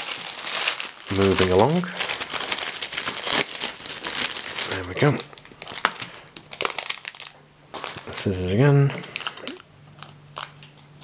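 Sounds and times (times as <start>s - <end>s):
wrapper rustling: 0.0s - 8.3s, 8.9s - 11.0s.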